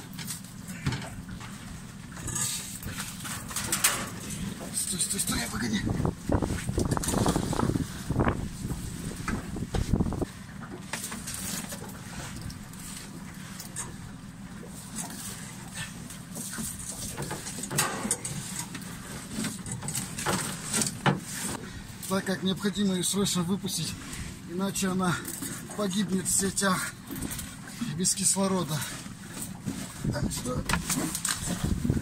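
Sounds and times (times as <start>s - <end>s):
wind and water noise: 0.0s - 32.0s.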